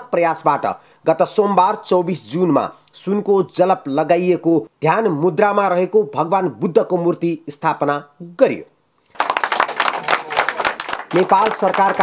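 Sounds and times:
small group applauding: 0:09.1 - 0:12.0.

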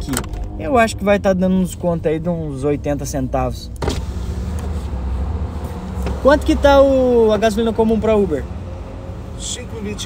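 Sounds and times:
car engine humming: 0:00.0 - 0:10.0.

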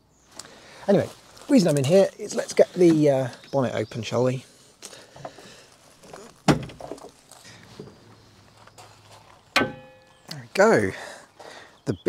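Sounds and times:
handling knocks and rustles: 0:04.9 - 0:10.4
bonnet release catch clunk: 0:09.6 - 0:10.1.

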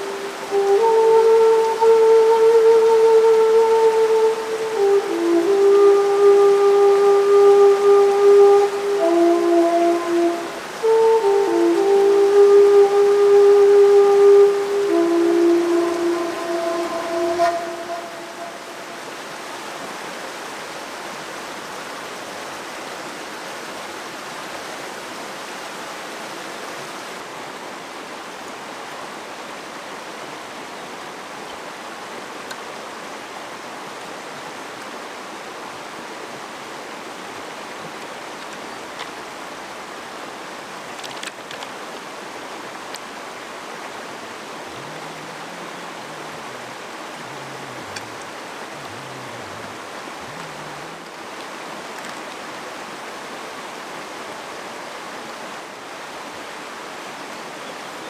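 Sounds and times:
slow melody of held notes: 0:00.0 - 0:19.4, 0:43.3 - 0:51.8
fast-flowing stream rushing: 0:00.0 - 0:58.0.

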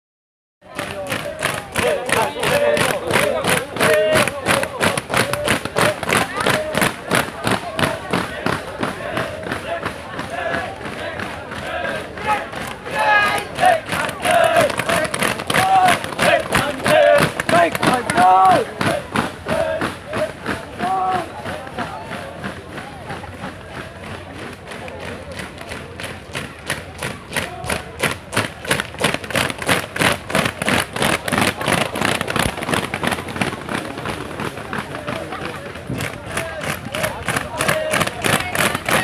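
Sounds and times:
group shouting a chant: 0:00.9 - 0:06.7, 0:07.9 - 0:21.3.

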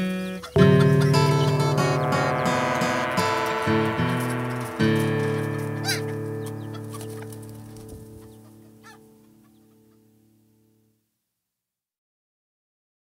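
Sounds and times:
acoustic guitar chord ringing: 0:00.6 - 0:09.1
chicken clucking: 0:05.8 - 0:10.0.

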